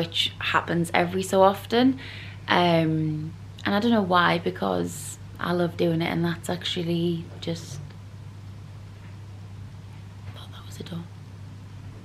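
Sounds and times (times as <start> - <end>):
steady low hum: 0.0 - 12.0
person whispering: 10.3 - 11.1.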